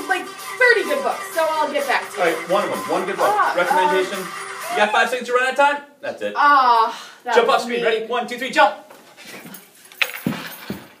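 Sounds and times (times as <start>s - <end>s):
feet thudding on floor: 10.1s - 11.0s.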